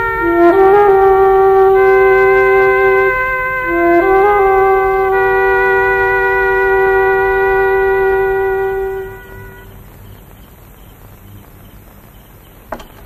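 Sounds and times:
held reedy wind instrument note: 0.0s - 10.6s
faint hiss: 0.0s - 13.0s.

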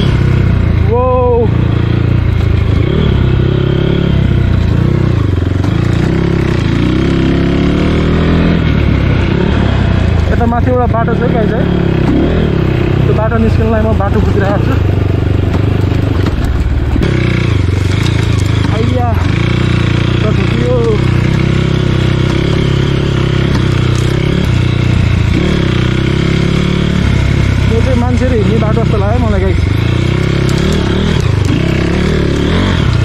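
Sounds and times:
dirt bike engine running: 0.0s - 33.0s
person's voice: 0.8s - 1.6s, 10.2s - 11.8s, 13.0s - 14.9s, 18.6s - 19.4s, 20.1s - 21.1s, 27.6s - 29.7s.

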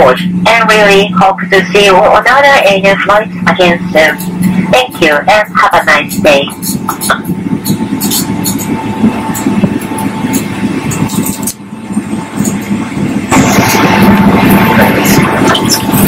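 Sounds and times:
faint steady whine: 0.0s - 16.0s
jet engines rumbling: 0.0s - 16.0s.

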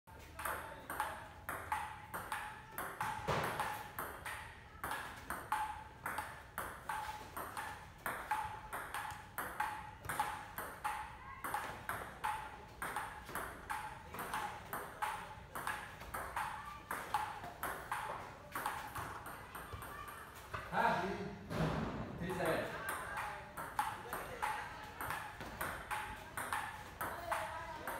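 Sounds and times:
table tennis ball clicking: 0.4s - 19.8s, 22.8s - 27.9s.

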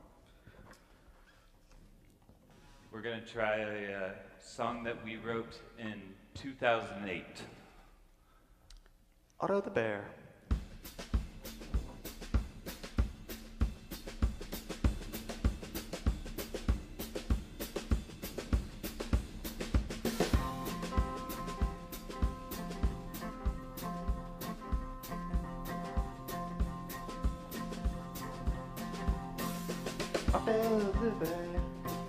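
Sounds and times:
drum kit playing a steady beat: 10.5s - 32.0s.

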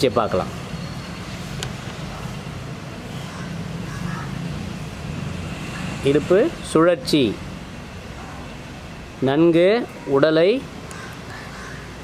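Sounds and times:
low machinery or traffic hum: 0.0s - 12.0s.

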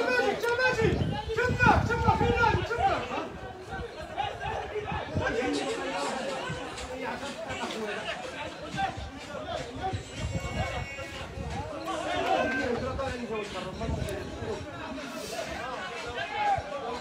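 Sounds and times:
spectators chatting and calling out: 0.0s - 17.0s.

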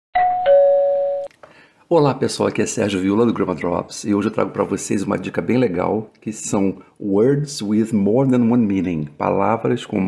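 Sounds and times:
two-note doorbell chime: 0.2s - 1.3s.

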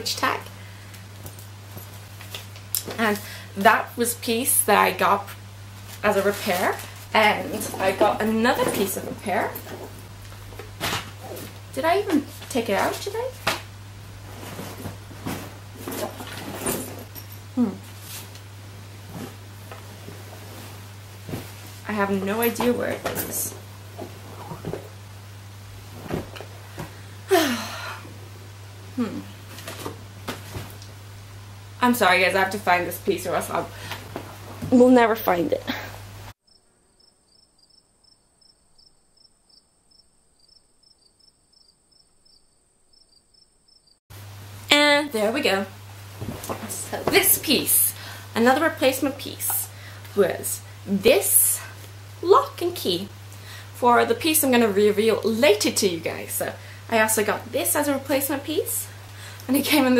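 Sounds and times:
low steady hum: 0.0s - 36.4s
rustling and handling noises: 0.9s - 3.2s, 5.7s - 25.0s, 25.8s - 27.0s, 29.4s - 31.0s, 45.8s - 47.8s
woman saying hmm: 17.6s - 17.8s, 29.0s - 29.3s
cricket chirping: 36.4s - 44.0s.

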